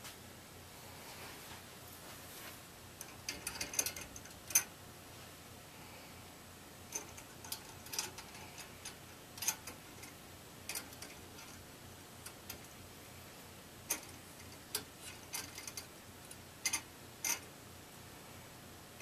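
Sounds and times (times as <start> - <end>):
metallic clicks of screws and brackets: 3.0 - 4.7, 6.9 - 11.6, 12.2 - 12.8, 13.8 - 17.5.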